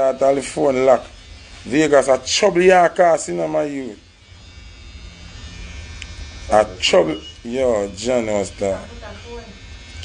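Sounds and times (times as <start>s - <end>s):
low buzzing hum: 0.0s - 10.0s.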